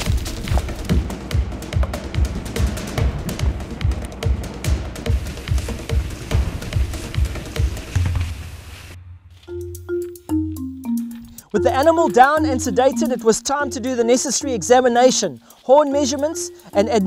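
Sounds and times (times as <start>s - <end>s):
electronic background music: 0.0s - 8.4s, 9.3s - 17.0s.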